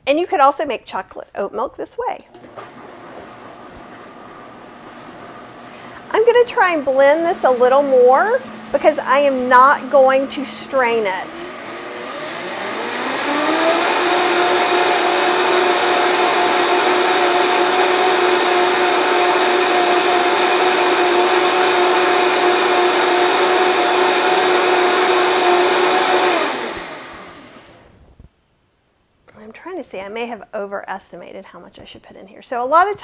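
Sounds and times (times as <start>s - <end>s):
blender motor whining: 2.3s - 27.9s.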